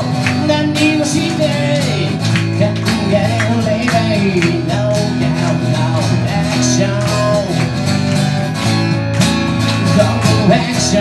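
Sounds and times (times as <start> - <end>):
band song with guitar: 0.0 - 11.0.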